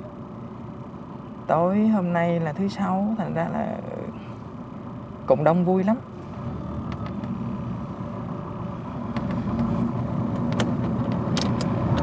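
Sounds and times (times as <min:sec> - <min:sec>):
bus engine hum: 0:00.0 - 0:12.0.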